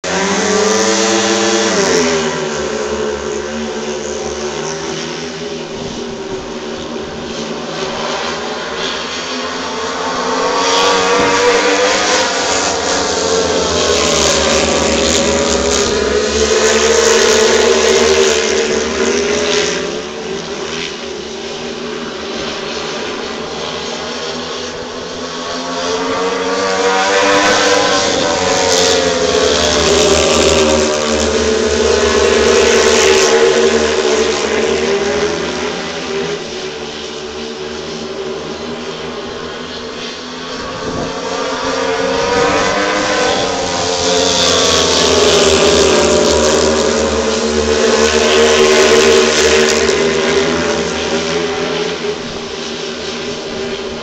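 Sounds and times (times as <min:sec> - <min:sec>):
motorbike engines racing: 0:00.0 - 0:54.0.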